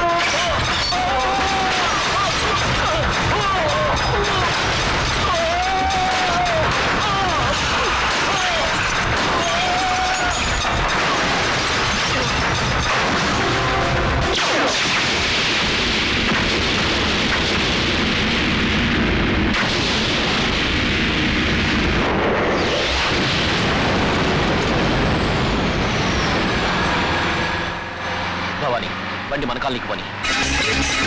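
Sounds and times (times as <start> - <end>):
car exploding and burning: 0.0 - 27.9.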